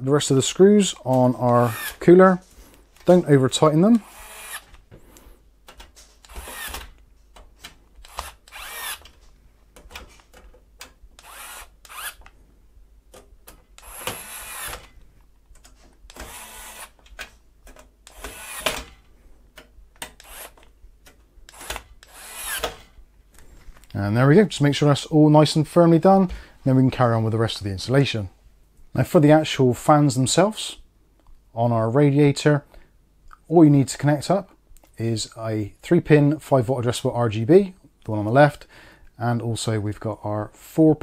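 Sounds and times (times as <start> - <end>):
screwdriver scraping and clicking: 5.8 - 6.9, 8.0 - 9.2, 20.0 - 20.7.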